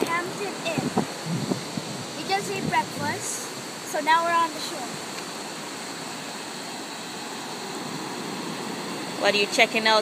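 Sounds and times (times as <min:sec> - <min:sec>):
ocean waves breaking on beach: 0:00.0 - 0:10.0.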